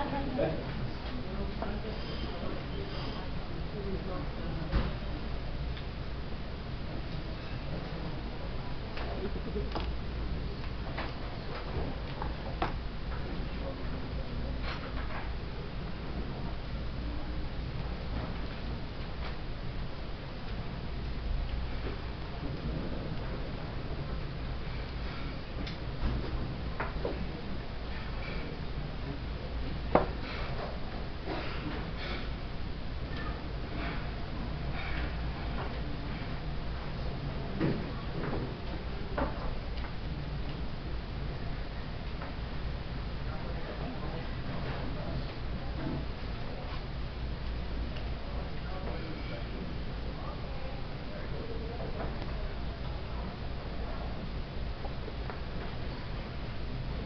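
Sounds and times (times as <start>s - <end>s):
low room hum: 0.0s - 57.0s.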